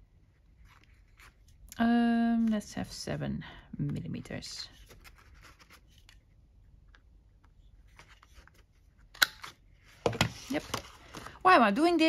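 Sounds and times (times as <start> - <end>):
paper rustling: 4.7 - 6.3.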